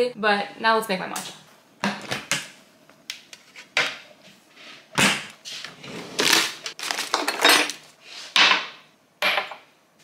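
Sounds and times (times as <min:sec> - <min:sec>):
packets rustling in a drawer: 0:05.6 - 0:08.0.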